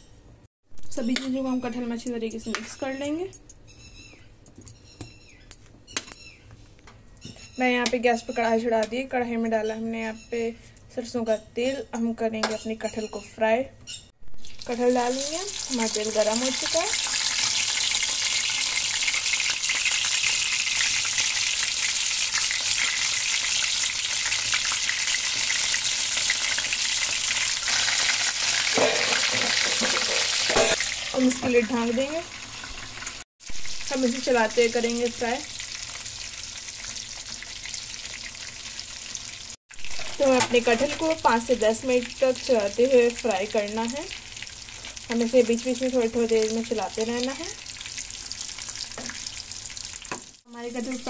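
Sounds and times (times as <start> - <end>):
food sizzling in hot oil: 14.3 - 51.0.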